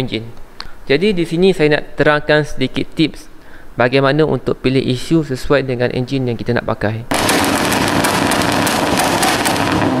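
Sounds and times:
car exhaust crackling and popping: 0:07.1 - 0:10.0
engine noise: 0:07.1 - 0:10.0.

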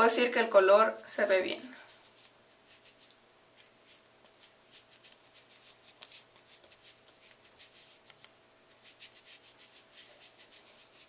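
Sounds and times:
makeup sponge rubbing skin: 0:01.8 - 0:11.0.

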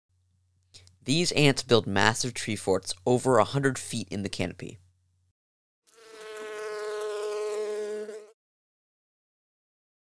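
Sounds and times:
high bee buzz: 0:05.9 - 0:08.4.

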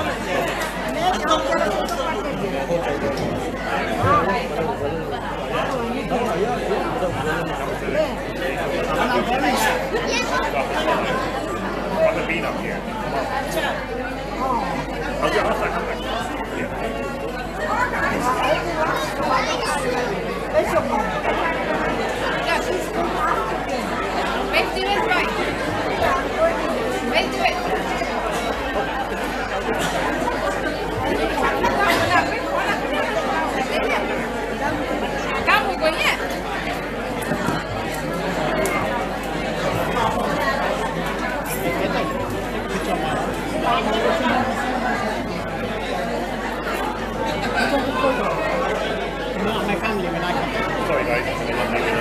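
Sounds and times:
crowd chatter: 0:00.0 - 0:52.0.

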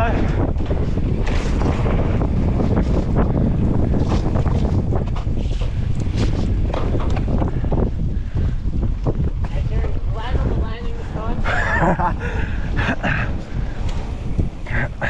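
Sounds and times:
bike rattling: 0:00.0 - 0:15.0
wind buffeting microphone: 0:00.0 - 0:15.0.

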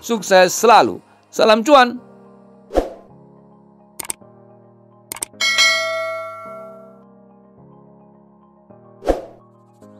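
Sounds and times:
soft background music: 0:00.0 - 0:09.9
mouse clicks: 0:04.0 - 0:04.2, 0:05.1 - 0:05.4
notification bell ding: 0:05.4 - 0:07.0.

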